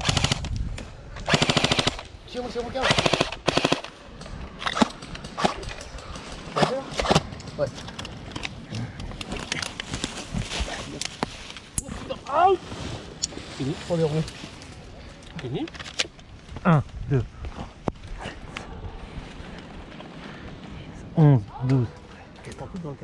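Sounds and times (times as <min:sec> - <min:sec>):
airsoft guns firing: 0:01.3 - 0:02.0, 0:02.8 - 0:05.8.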